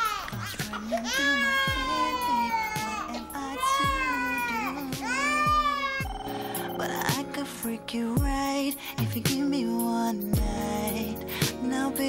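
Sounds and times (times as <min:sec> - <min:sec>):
infant crying: 0:00.0 - 0:06.4
r and b music with bass beat: 0:00.1 - 0:12.0.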